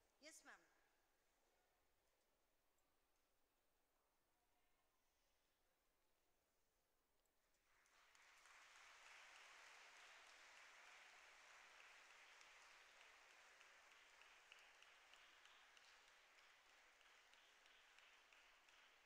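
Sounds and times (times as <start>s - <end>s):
faint audience applause: 7.5s - 19.0s.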